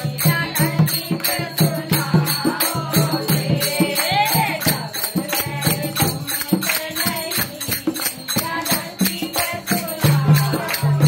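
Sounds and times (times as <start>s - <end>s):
devotional singing: 0.0s - 11.0s
jingling tambourine: 0.0s - 11.0s
percussion beat: 0.0s - 11.0s.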